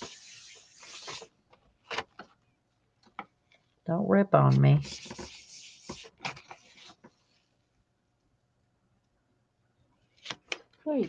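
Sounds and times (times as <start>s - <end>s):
paper peeling off gel plate: 0.0s - 2.2s.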